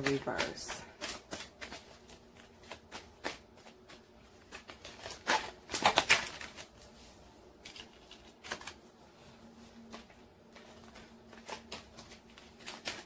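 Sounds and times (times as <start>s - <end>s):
cards being shuffled: 0.0s - 7.0s, 7.6s - 8.9s, 9.7s - 13.0s.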